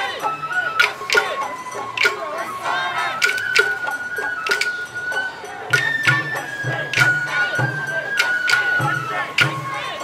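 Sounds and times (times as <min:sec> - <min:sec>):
bamboo flute high note: 0:00.0 - 0:10.0.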